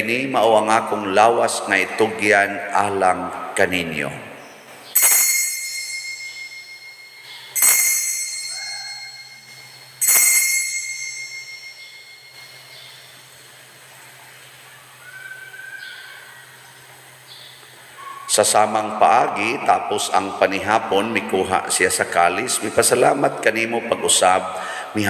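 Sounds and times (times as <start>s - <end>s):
small altar bell ringing: 5.0s - 13.5s.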